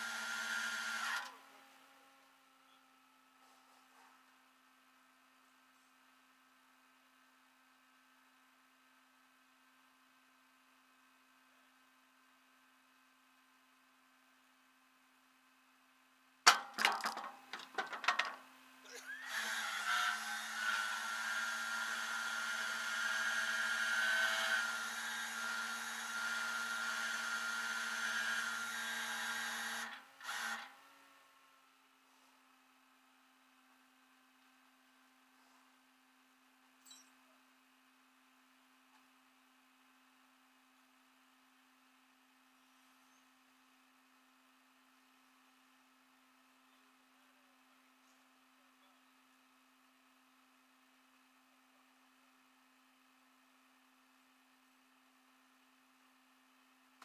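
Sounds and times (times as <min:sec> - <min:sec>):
tow truck engine and hydraulics: 0:00.0 - 0:09.4, 0:17.2 - 0:56.9.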